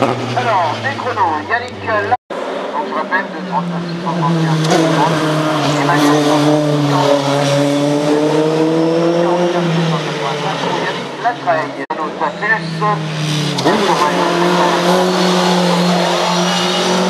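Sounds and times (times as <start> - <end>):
race car engine running hard: 0.0 - 17.0.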